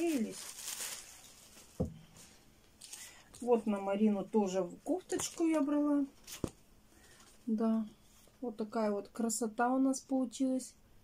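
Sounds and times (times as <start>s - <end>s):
plastic bags rustling: 0.0s - 3.8s.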